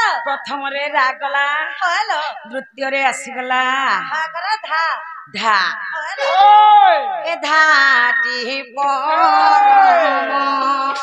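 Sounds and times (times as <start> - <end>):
woman singing wailing syllables: 7.3 - 11.0.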